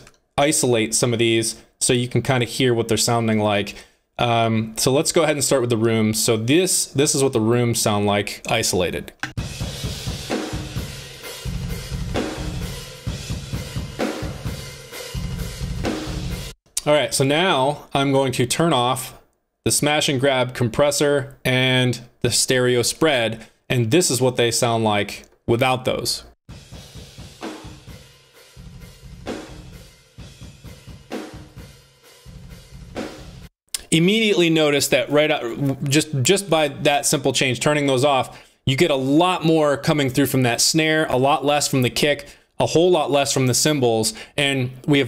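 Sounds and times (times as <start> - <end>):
fast bass drum runs: 9.4 - 16.6, 26.5 - 33.5.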